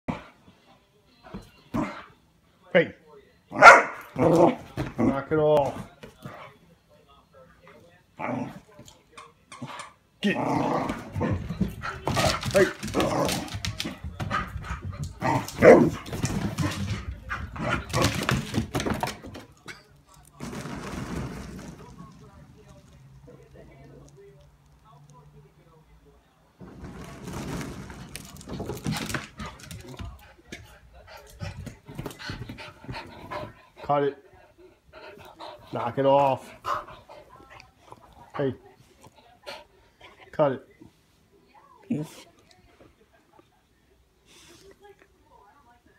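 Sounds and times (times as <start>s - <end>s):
dog barking excitedly: 3.6s - 4.0s
small dog panting: 30.1s - 38.3s.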